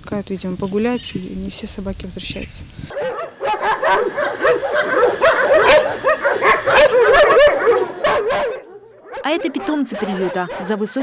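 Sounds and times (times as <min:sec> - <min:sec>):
dogs barking: 0:02.9 - 0:11.0.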